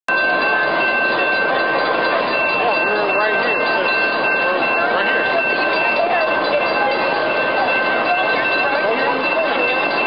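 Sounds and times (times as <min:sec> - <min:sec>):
trolley rolling noise: 0:00.1 - 0:10.0.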